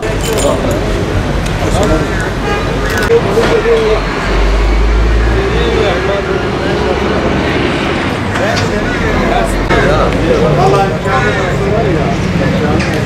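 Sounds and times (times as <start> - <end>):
people talking: 0.0 - 13.0
roadside traffic: 0.0 - 13.0
heavy vehicle passing: 0.8 - 13.0.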